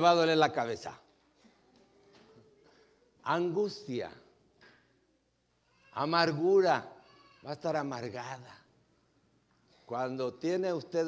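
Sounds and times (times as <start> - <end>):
man speaking: 0.0 - 1.1, 3.2 - 4.3, 6.0 - 8.7, 9.9 - 11.0.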